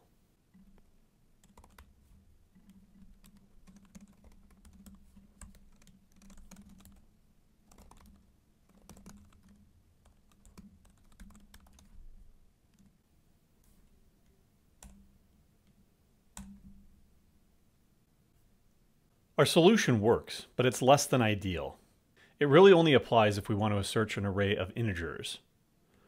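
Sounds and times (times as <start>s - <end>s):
faint keyboard clicks: 0.5s - 2.0s, 13.6s - 15.0s
typing on computer keyboard: 0.5s - 12.1s, 14.8s - 15.0s, 16.4s - 16.8s.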